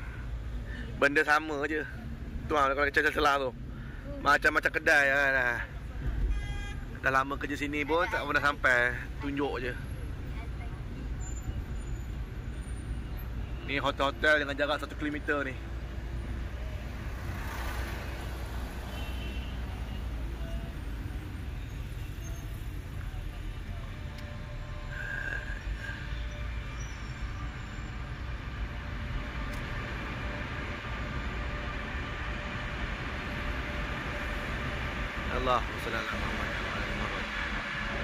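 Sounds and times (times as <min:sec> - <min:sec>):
car tyres and engine rumble: 0:00.0 - 0:38.0.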